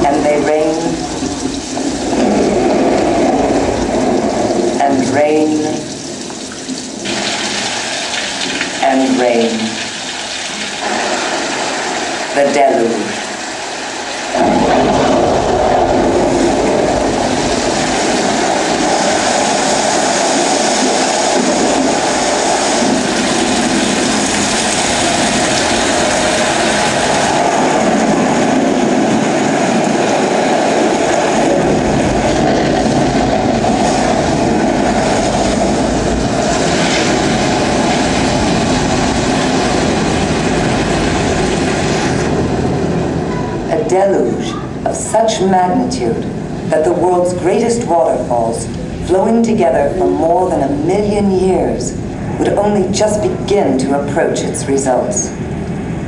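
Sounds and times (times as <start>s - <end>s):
deep rumble: 0.0s - 56.0s
dense wash of rushing water: 0.0s - 56.0s.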